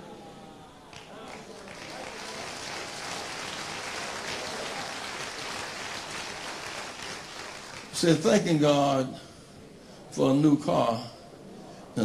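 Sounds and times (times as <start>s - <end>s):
congregation applauding: 0.9s - 8.4s.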